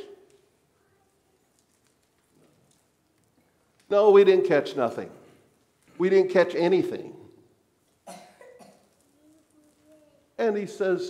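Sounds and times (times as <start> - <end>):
person coughing: 8.0 - 8.8.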